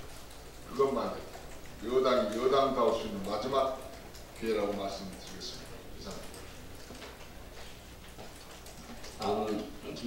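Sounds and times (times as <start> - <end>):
faint irregular clicks: 0.0 - 10.0
low steady room hum: 0.0 - 10.0.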